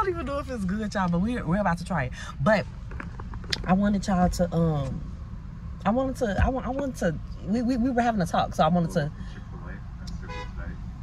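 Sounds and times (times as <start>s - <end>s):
car engine and cabin rumble: 0.0s - 11.0s.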